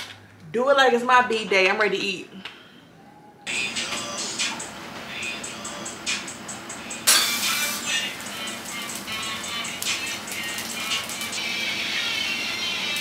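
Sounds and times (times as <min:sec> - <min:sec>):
music with steady beat: 0:03.5 - 0:11.6.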